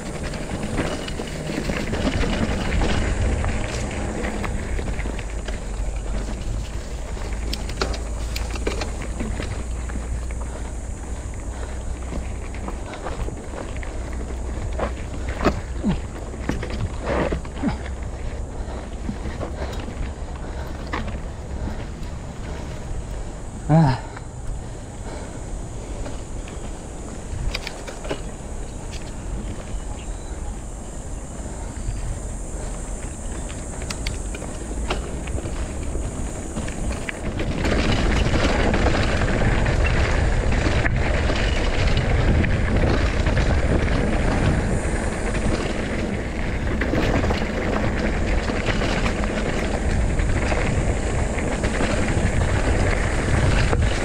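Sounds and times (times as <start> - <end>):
bicycle rattling knocks: 0.0 - 54.0
bike tyre noise: 0.0 - 54.0
wind rumble on microphone: 0.0 - 54.0.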